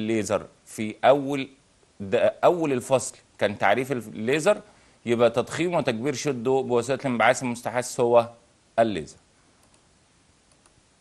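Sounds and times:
man's voice: 0.0s - 9.2s
faint clicks: 9.6s - 10.8s.

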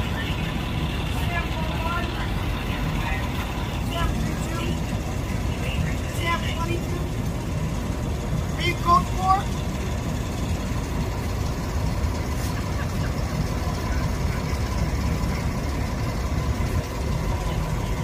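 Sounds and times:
people talking at a distance: 0.0s - 7.2s
large vehicle engine idling: 0.0s - 18.0s.

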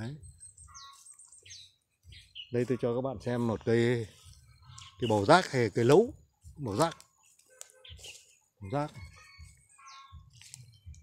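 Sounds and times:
short high bird chirps: 0.0s - 2.8s, 9.0s - 10.4s.

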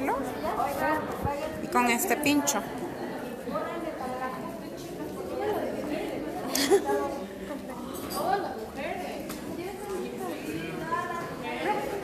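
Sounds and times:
people chatting in a hall: 0.0s - 12.0s.

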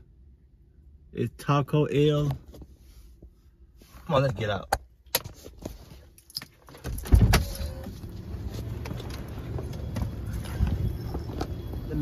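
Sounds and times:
steady traffic noise: 0.0s - 12.0s.

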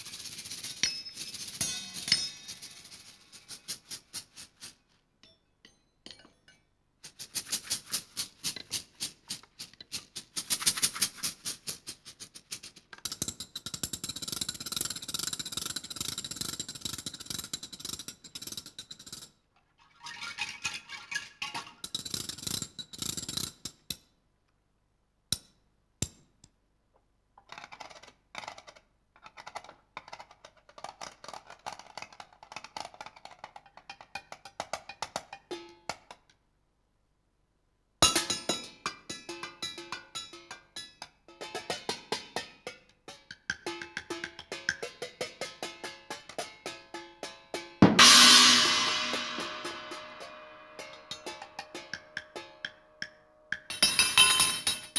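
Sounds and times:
basket shakers rattling: 0.0s - 4.8s, 7.1s - 13.4s.

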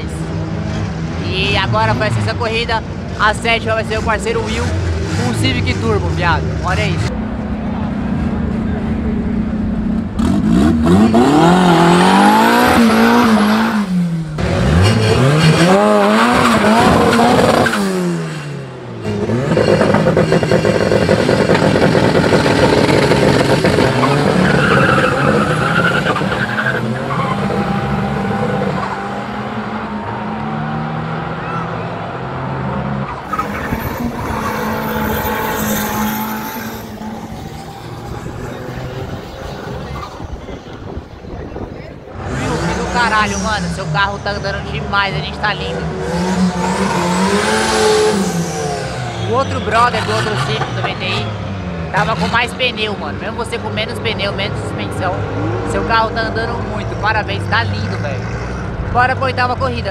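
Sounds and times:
car engine revving: 0.0s - 59.9s
cars accelerating hard: 0.0s - 59.9s.

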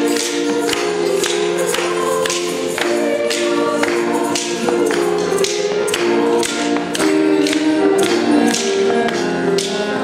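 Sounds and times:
hands clapping along: 0.0s - 10.0s
young choir singing: 0.0s - 10.0s.

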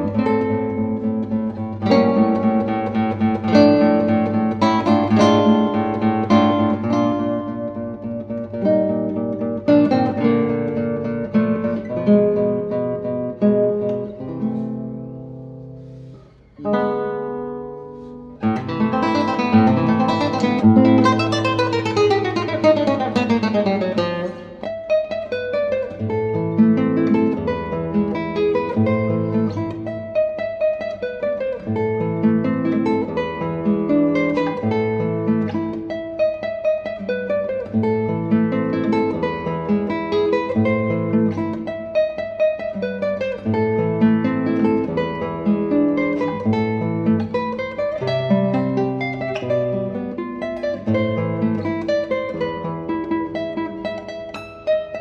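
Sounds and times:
classical guitar fingerstyle: 0.0s - 55.0s.

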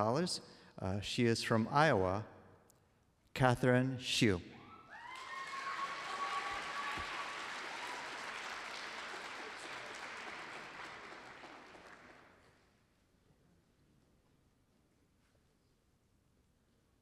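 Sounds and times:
audience applauding: 5.0s - 12.4s.

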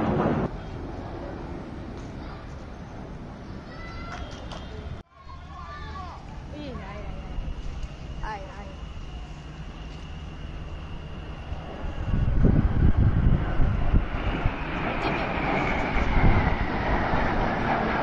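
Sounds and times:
wind buffeting microphone: 0.0s - 3.6s, 10.8s - 18.0s
jet aircraft passing overhead: 0.0s - 18.0s.

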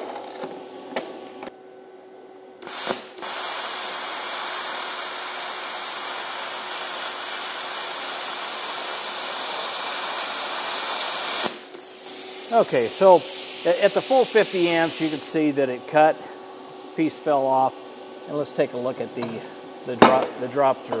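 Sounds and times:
plasma cutter hissing: 2.6s - 15.4s.

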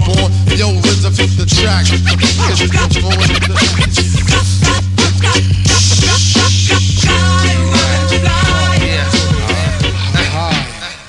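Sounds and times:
hip hop beat with bass: 0.0s - 11.0s
record scratching: 0.8s - 11.0s.

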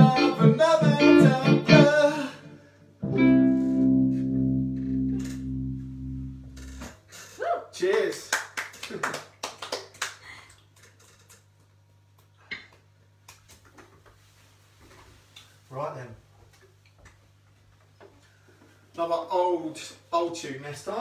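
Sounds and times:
keyboard playing: 0.0s - 2.4s, 3.0s - 6.8s
person singing: 0.0s - 2.6s.

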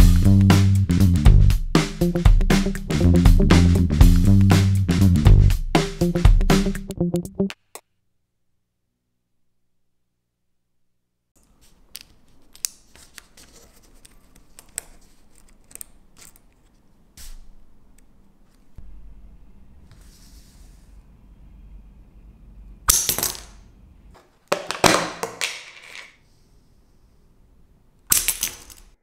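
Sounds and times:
faint room noise: 7.6s - 29.0s.

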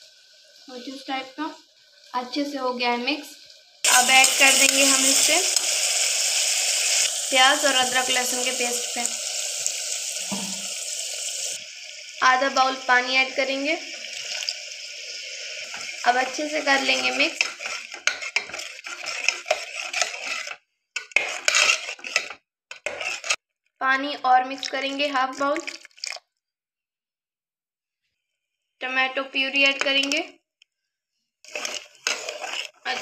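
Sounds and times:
water sizzling in hot oil: 0.0s - 23.4s, 24.4s - 26.2s, 31.4s - 33.0s
person speaking: 3.9s - 5.6s, 16.0s - 17.4s, 28.8s - 30.3s
spoon scraping metal pot: 3.9s - 8.7s, 15.7s - 23.4s, 31.5s - 33.0s.

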